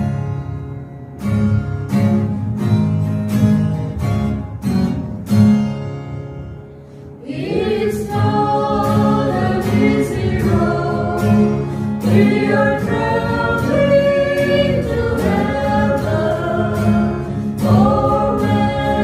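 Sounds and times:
strummed acoustic guitar: 0:00.0 - 0:19.0
group singing worship song: 0:07.2 - 0:19.0.

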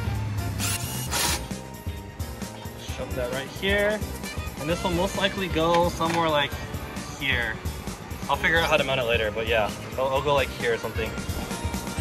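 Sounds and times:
background music: 0:00.0 - 0:12.0
cordless ratchet loosening bolt: 0:00.6 - 0:01.6.

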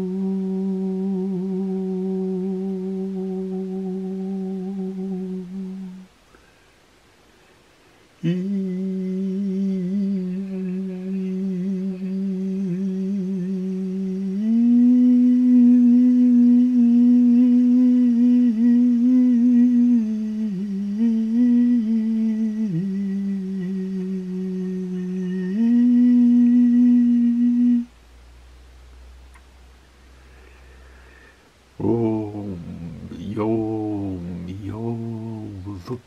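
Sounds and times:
person humming mantra tone: 0:00.0 - 0:06.1, 0:08.2 - 0:27.9, 0:31.8 - 0:36.0.

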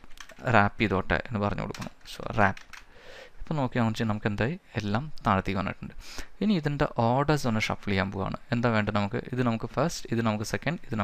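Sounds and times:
computer keyboard typing: 0:00.0 - 0:00.5, 0:01.6 - 0:02.9
man speaking: 0:00.4 - 0:02.6, 0:03.5 - 0:11.0.

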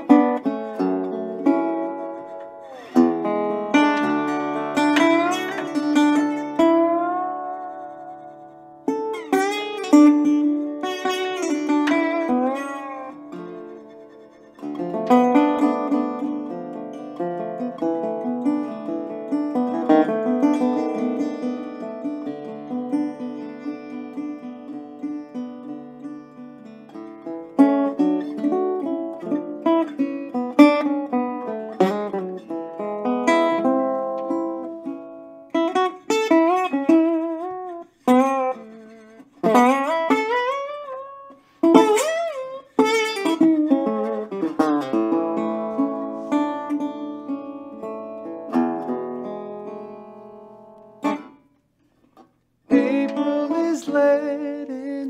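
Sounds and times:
slide guitar single-note lines: 0:00.0 - 0:51.5, 0:52.7 - 0:55.0.

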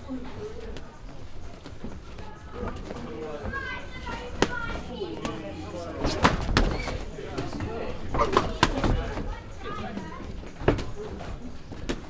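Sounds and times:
people calling and chattering: 0:00.0 - 0:12.0.

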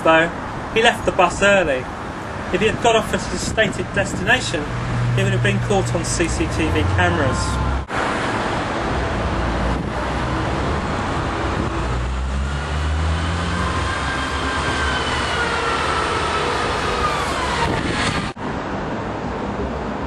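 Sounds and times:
road traffic rumble: 0:00.0 - 0:20.0
vehicle whine falling in pitch: 0:11.6 - 0:18.4.

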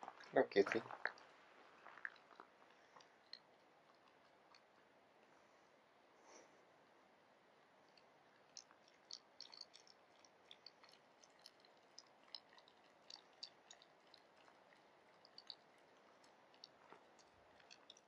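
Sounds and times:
dog gnawing a feather: 0:01.0 - 0:05.0, 0:07.9 - 0:18.0.

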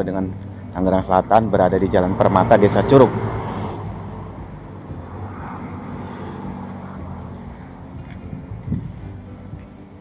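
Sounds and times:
scooter engines droning: 0:00.0 - 0:10.0.

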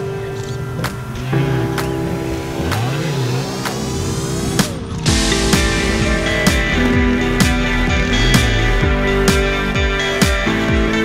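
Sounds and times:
background music with steady beat: 0:00.0 - 0:11.0
motorcycle engine revving: 0:00.2 - 0:10.5.

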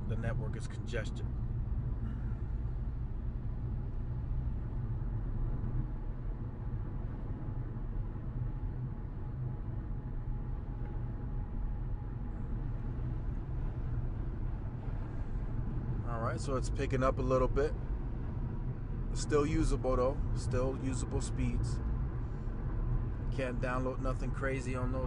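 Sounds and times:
car interior road and engine noise: 0:00.0 - 0:25.0.

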